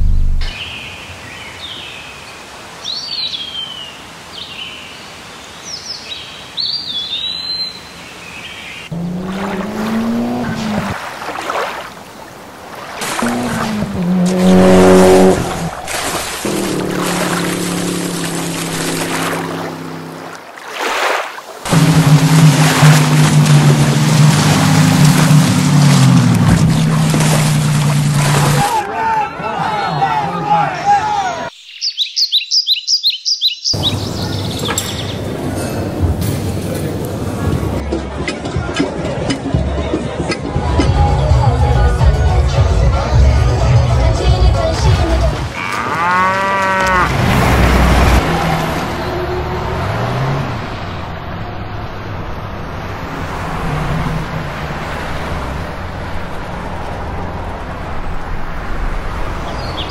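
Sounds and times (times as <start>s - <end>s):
birds chirping: 0.0s - 11.0s, 31.3s - 36.0s, 59.3s - 59.9s
steady outdoor noise: 0.0s - 59.9s
jet ski engine running: 8.9s - 11.0s, 13.0s - 20.4s, 21.7s - 28.7s
motor passing: 8.9s - 11.1s, 13.0s - 20.4s, 21.7s - 28.6s
churned water hissing: 8.9s - 28.8s, 46.8s - 59.4s
birds chirping and singing: 31.5s - 35.3s.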